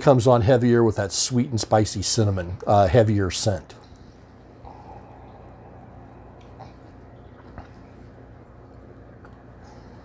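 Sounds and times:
steady low hum: 0:00.0 - 0:10.0
soft mouth sipping noises: 0:04.4 - 0:09.6.

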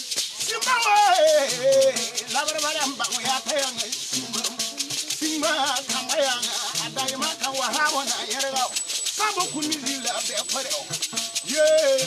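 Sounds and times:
gourd shakers rattling: 0:00.0 - 0:12.0
men singing: 0:00.0 - 0:12.0
plucked spike lute: 0:00.2 - 0:12.0.

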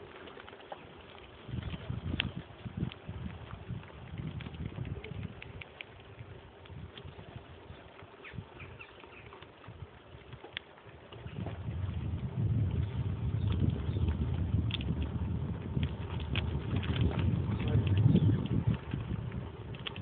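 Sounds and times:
bicycle tyres rolling on gravel: 0:00.0 - 0:20.0
wind rumbling on microphone: 0:00.0 - 0:20.0.

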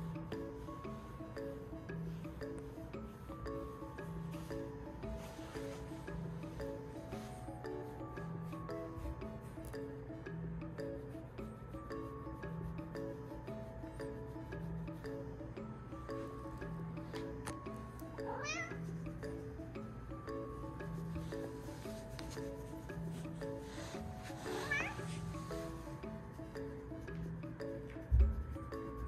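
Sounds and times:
background music: 0:00.0 - 0:29.0.

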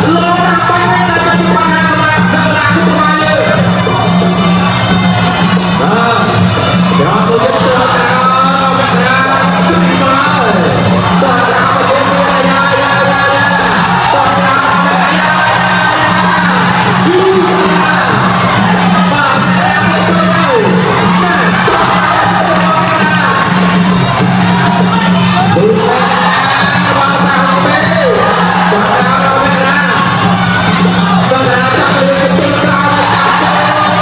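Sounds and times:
crowd shouting: 0:00.0 - 0:34.0.

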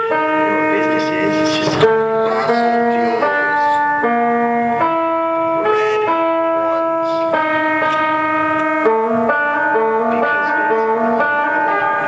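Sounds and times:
guitar bell-like held notes: 0:00.0 - 0:12.0.

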